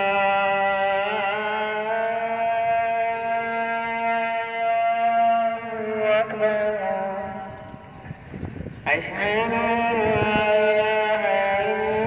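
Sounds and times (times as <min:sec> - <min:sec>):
man singing call to prayer: 0:00.0 - 0:07.8, 0:08.7 - 0:12.0.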